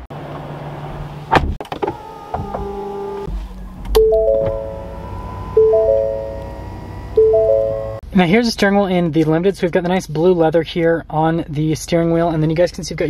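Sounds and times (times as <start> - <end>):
engine idling low: 2.0 - 8.1
three-note warning chime: 4.0 - 8.0.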